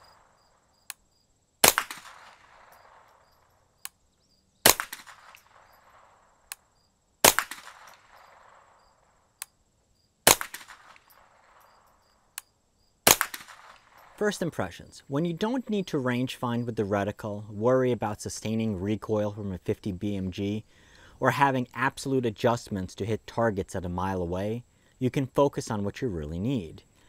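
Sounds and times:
suppressed rifle shots: 0:00.0 - 0:01.0, 0:01.6 - 0:03.5, 0:04.6 - 0:09.5, 0:10.2 - 0:12.2, 0:13.0 - 0:14.2
faint click: 0:00.8 - 0:01.0.

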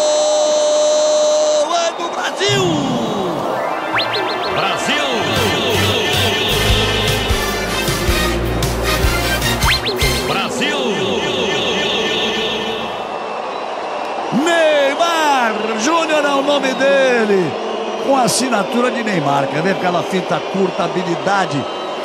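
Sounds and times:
crowd singing and cheering: 0:02.1 - 0:22.0
loud voices rising and falling: 0:02.2 - 0:22.0
music with steady bass: 0:05.3 - 0:10.3.

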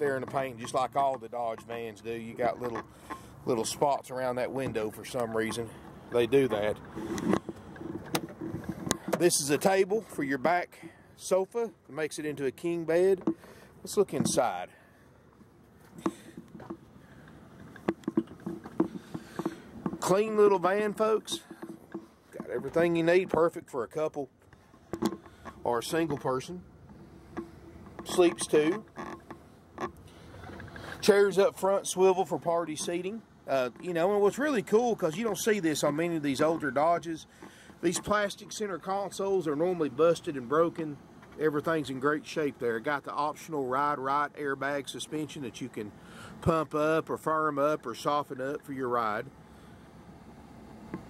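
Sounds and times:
low background noise: 0:00.0 - 0:51.0
faint knocks and creaks: 0:04.6 - 0:09.8, 0:15.3 - 0:23.5, 0:24.4 - 0:31.1.

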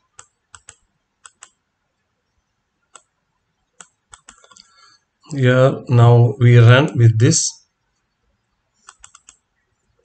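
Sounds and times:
faint computer clicks: 0:00.1 - 0:01.6, 0:02.9 - 0:03.2, 0:03.8 - 0:04.7, 0:08.8 - 0:09.5.

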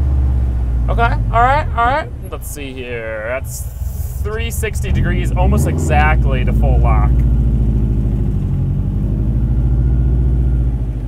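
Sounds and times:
car engine hum from inside: 0:00.0 - 0:11.0.

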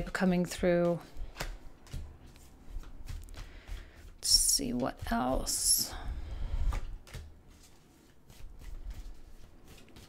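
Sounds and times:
cards shuffling: 0:00.5 - 0:05.4, 0:06.7 - 0:10.0.

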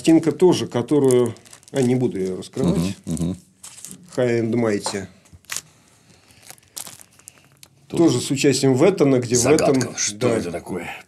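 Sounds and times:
record sleeve rustling: 0:01.0 - 0:02.6, 0:06.3 - 0:07.5.

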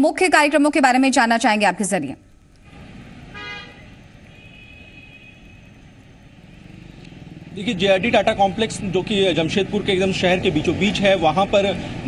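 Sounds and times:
road traffic rumble: 0:02.2 - 0:12.0
higher-pitched honk: 0:03.3 - 0:05.8
vehicle horn honking: 0:03.3 - 0:05.9.

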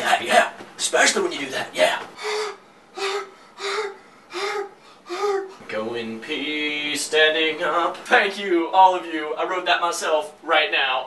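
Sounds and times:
man making high breathy sounds: 0:02.2 - 0:05.6.

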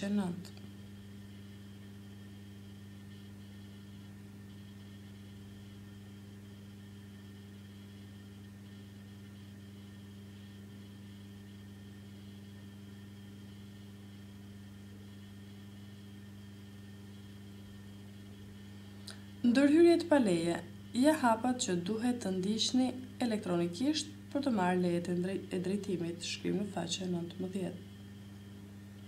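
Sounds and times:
low electrical hum with hiss: 0:00.0 - 0:29.0.

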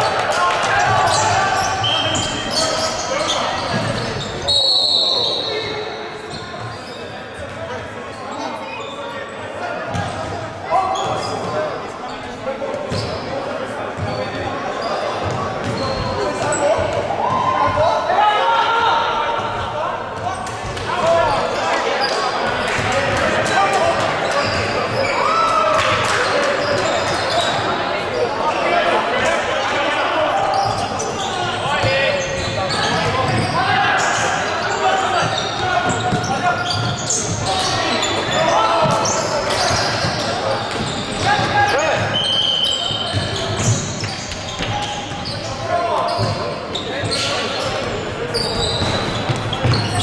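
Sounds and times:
voices calling out in gym: 0:00.0 - 0:50.0
ball bouncing on hardwood court: 0:48.6 - 0:50.0.

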